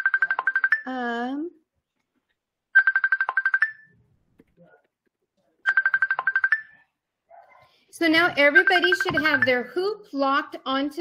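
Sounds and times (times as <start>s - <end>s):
telephone ringing electronic trill: 0.0s - 0.9s, 2.8s - 4.0s, 5.7s - 6.8s, 8.4s - 9.7s.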